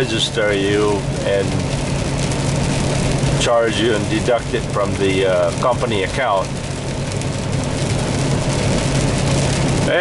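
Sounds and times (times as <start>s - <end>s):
rain on wet road hiss: 0.0s - 10.0s
truck engine drone: 0.0s - 10.0s.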